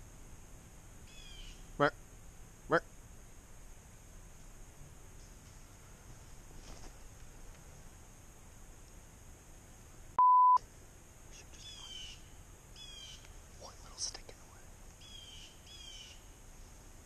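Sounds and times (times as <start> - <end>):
small bird chirping: 1.0 - 1.8, 11.4 - 14.4, 15.0 - 16.4
censor bleep tone: 10.2 - 10.6.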